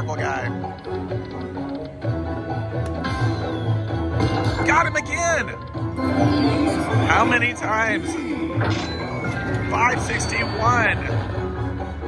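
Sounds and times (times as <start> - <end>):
slot machine electronic music: 0.0 - 12.0.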